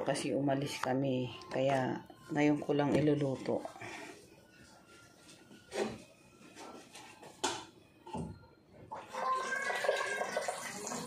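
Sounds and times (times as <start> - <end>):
water filling a pot: 8.9 - 11.0.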